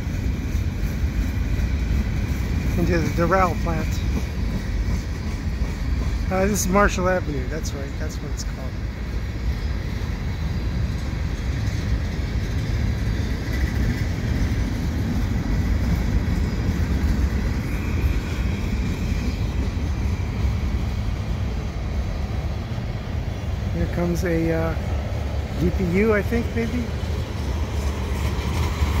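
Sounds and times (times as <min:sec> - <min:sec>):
freight train wheels rumbling: 0:00.0 - 0:29.0.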